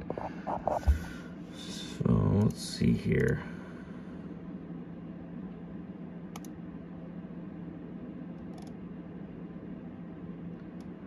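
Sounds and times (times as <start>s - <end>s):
desktop computer humming: 0.0s - 11.0s
faint mouse clicks: 6.3s - 6.6s.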